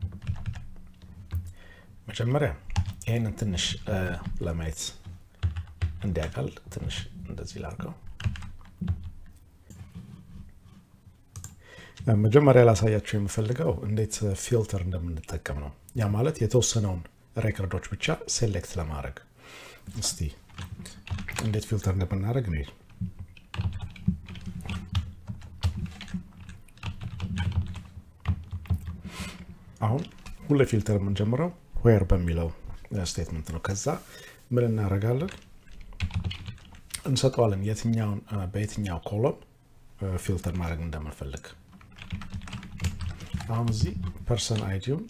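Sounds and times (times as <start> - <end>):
keyboard typing: 0.0 - 1.5, 2.7 - 6.9, 7.8 - 10.1, 11.3 - 12.1, 20.5 - 21.8, 22.6 - 29.1, 35.2 - 37.0, 41.7 - 44.8.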